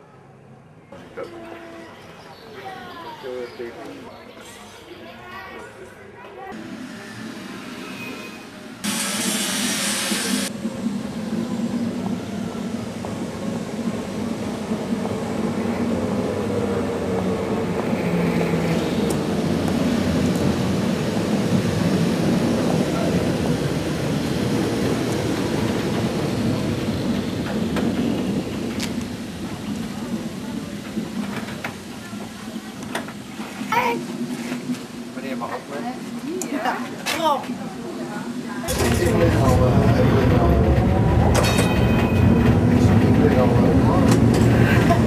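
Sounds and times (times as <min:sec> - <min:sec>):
tram wheels and motor rumble: 0:00.5 - 0:45.0
hiss burst: 0:06.9 - 0:10.5.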